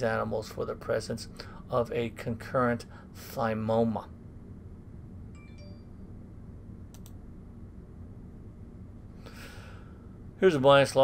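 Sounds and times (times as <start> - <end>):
faint room hum: 0.0 - 11.0
faint tinkling chime: 5.3 - 6.2
mouse double click: 6.9 - 7.2.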